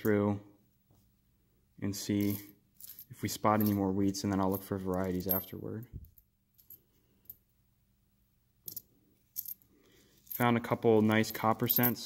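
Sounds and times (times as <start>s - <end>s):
coins clinking: 2.1s - 5.6s, 11.2s - 12.0s.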